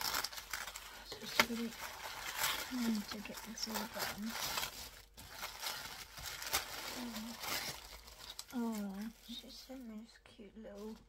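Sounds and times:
packaging rustling and crinkling: 0.0 - 10.0.

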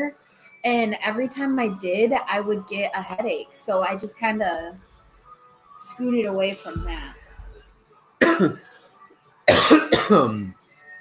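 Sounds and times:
man coughing harshly: 8.2 - 8.7, 9.5 - 10.5.

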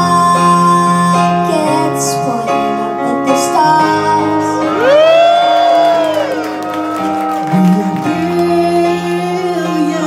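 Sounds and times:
live band playing chords: 0.0 - 10.0.

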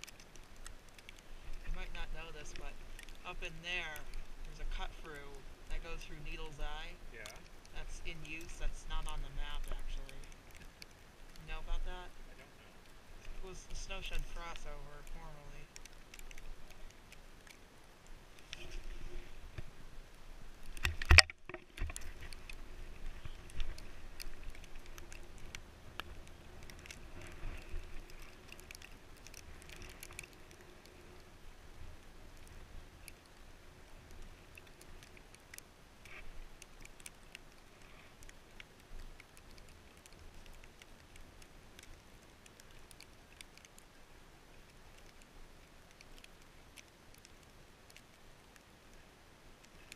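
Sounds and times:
small ticks and taps: 0.0 - 12.1, 12.8 - 19.7, 20.6 - 31.3, 32.4 - 33.4, 34.0 - 49.0, 49.6 - 49.9.

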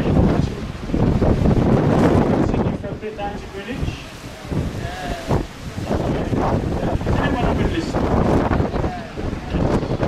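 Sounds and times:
low rumble of boat and water: 0.0 - 10.0
wind buffeting microphone: 0.0 - 10.0.

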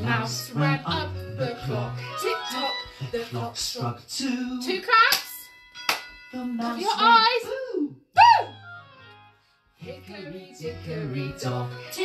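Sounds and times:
children's song backing track: 0.0 - 7.7, 8.5 - 12.0.

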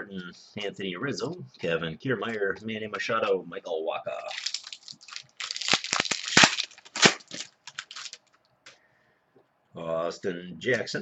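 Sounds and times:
foil wrapper tearing and crinkling: 4.2 - 8.3.

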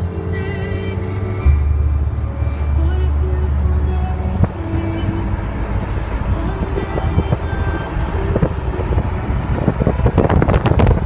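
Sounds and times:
car road rumble: 0.0 - 11.0
music playing: 0.0 - 11.0.

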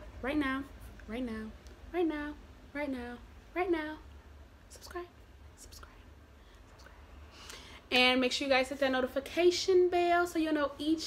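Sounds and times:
woman speaking: 0.0 - 4.1, 4.7 - 6.0, 7.9 - 11.0
low steady hum: 0.0 - 11.0
faint breaths and mouth sounds: 5.6 - 7.9.

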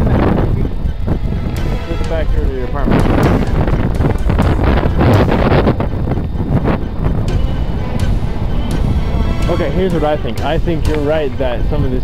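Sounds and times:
music playing: 0.0 - 12.0
wind blowing on microphone: 0.0 - 12.0.

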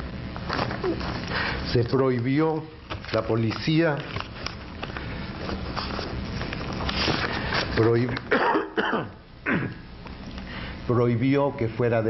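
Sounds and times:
man coughing: 8.3 - 9.9.

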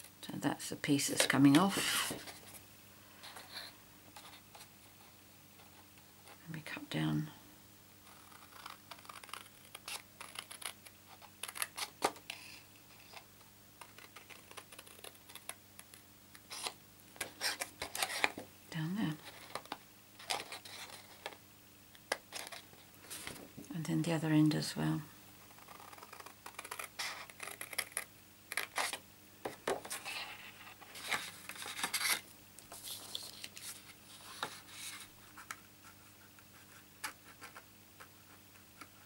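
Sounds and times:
card rustling: 26.5 - 35.6.

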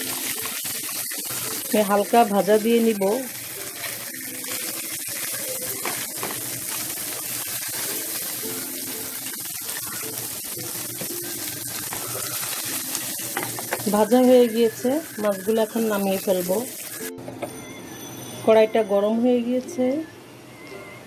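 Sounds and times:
spatula turning fish in pan: 0.0 - 17.1
fish sizzling in hot oil: 0.0 - 17.2.

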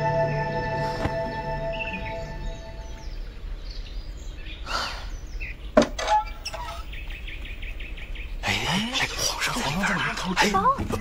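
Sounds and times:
soft background music: 0.0 - 3.3
birds chirping: 0.0 - 11.0.

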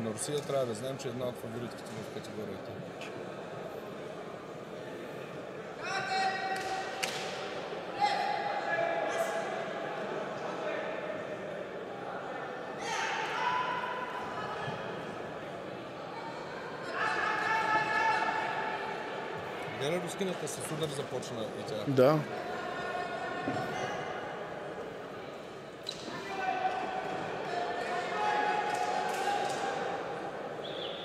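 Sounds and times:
murmur of voices: 0.0 - 31.0.

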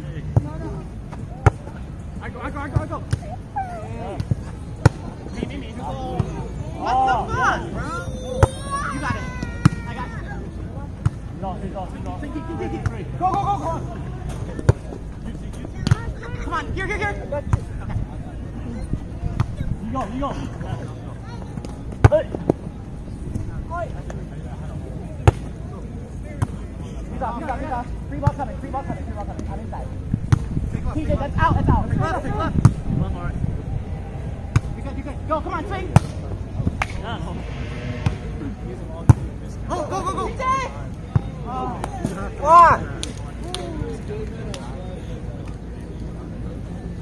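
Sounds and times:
players shouting: 32.0 - 38.6.

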